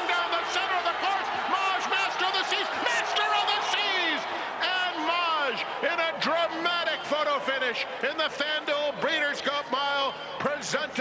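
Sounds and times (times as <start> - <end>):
crowd noise: 0.0 - 11.0
man giving fast excited race commentary: 0.0 - 11.0.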